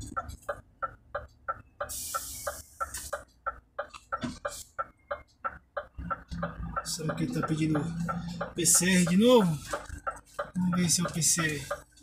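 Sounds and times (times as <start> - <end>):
turn signal ticking: 0.0 - 12.0
short hiss: 1.9 - 3.1.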